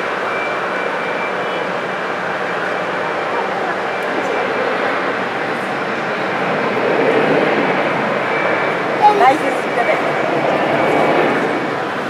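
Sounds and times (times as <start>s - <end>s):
jet engines running: 0.0s - 12.0s.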